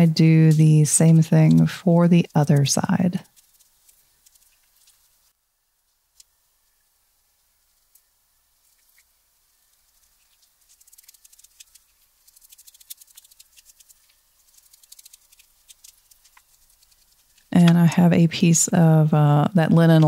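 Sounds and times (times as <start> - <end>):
glue brush bristles ticking: 0.0 - 5.3, 8.6 - 17.9.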